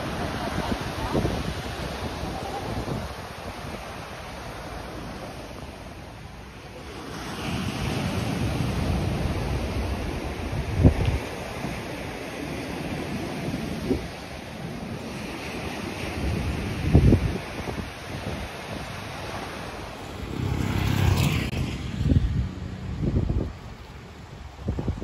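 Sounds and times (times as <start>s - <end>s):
wind buffeting microphone: 0.0s - 5.8s, 7.5s - 25.0s
surf breaking on beach: 0.0s - 25.0s.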